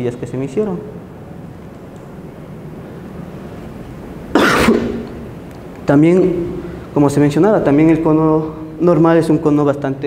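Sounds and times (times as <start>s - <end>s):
man coughing: 4.3s - 5.1s.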